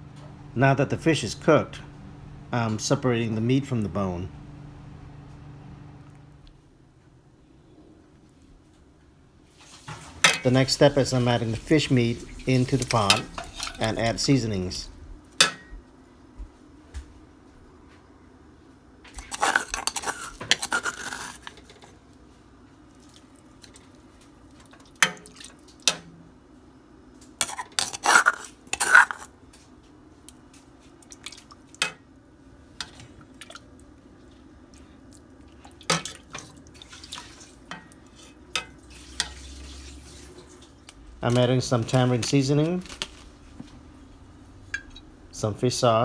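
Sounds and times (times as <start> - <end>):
faint steady hum: 0.0 - 46.0
spoon scraping: 10.3 - 14.8, 19.2 - 21.9, 27.4 - 29.3, 35.9 - 40.6.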